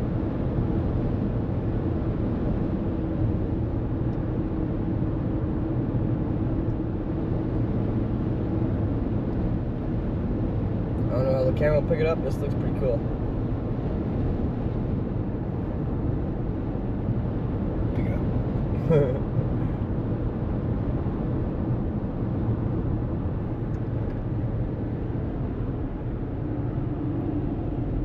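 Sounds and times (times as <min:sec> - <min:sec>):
car road noise: 0:00.0 - 0:28.0.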